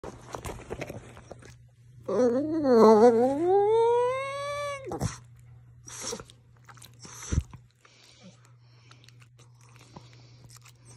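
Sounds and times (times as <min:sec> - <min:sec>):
dog howling: 0:02.1 - 0:05.2.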